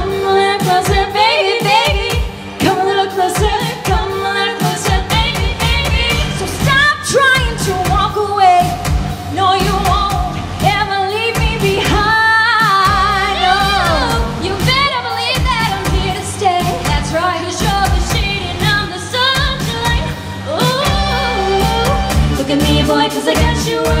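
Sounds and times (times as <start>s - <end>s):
band backing music: 0.0s - 24.0s
steady drum beat: 0.0s - 24.0s
women singing pop duet: 0.0s - 24.0s.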